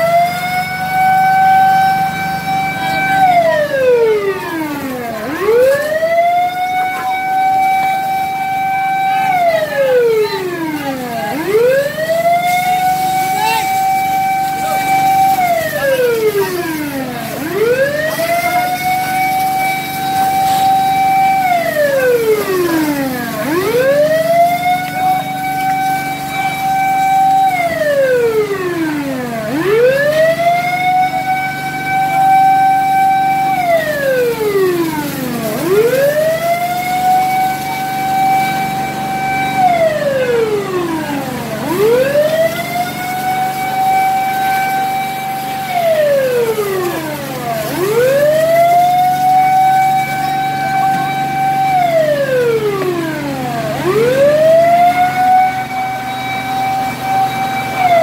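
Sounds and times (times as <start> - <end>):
fire truck siren wailing: 0.0 - 58.0.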